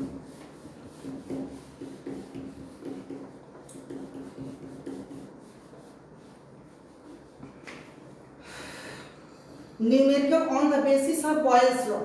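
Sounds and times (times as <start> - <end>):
eraser wiping whiteboard: 0.0 - 8.2.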